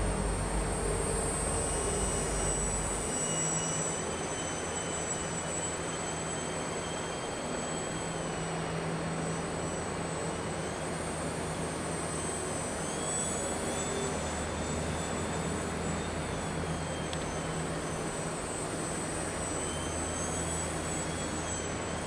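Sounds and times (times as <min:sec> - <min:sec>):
steady hum and hiss: 0:00.0 - 0:05.0
model plane motor whining: 0:00.0 - 0:22.0.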